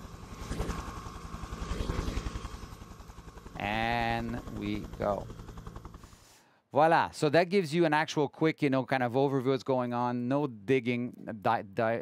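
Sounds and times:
helicopter rotor chop: 0:00.0 - 0:06.3
helicopter engine noise: 0:00.0 - 0:06.4.

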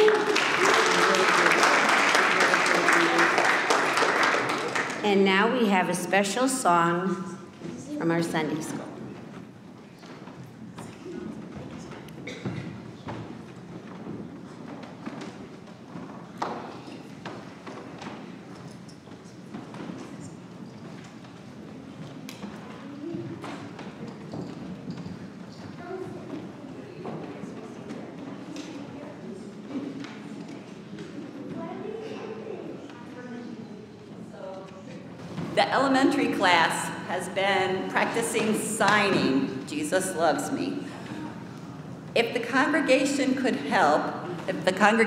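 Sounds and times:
low murmuring voices: 0:08.8 - 0:35.6
footsteps: 0:35.2 - 0:45.0.

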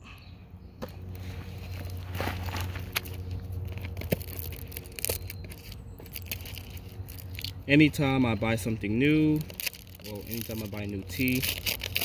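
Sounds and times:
steady low hum: 0:00.0 - 0:12.0
paper packaging tearing and crinkling: 0:01.7 - 0:12.0.

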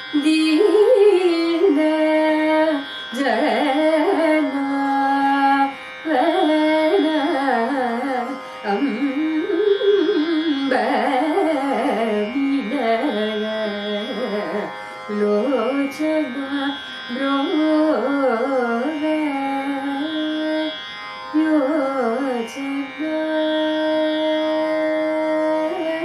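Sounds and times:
woman singing classical music: 0:00.0 - 0:26.0
singer breathing: 0:08.4 - 0:08.6.

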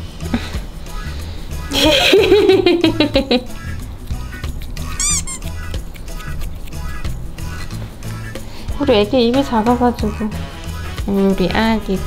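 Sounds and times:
background music: 0:00.0 - 0:12.0
kitten mewing: 0:04.8 - 0:05.8.

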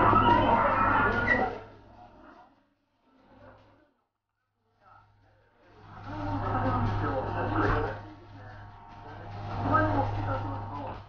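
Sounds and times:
indistinct voices: 0:00.0 - 0:03.8, 0:05.6 - 0:11.0
steady low hum: 0:04.9 - 0:11.0.

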